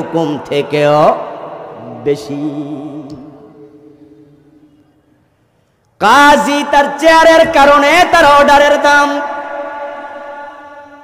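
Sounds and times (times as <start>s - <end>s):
man preaching in sing-song voice: 0.0s - 5.0s, 6.0s - 11.0s.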